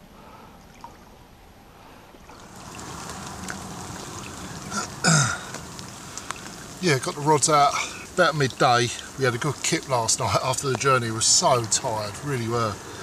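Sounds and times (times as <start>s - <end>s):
water hissing: 2.3s - 13.0s
man grunting: 4.7s - 5.5s.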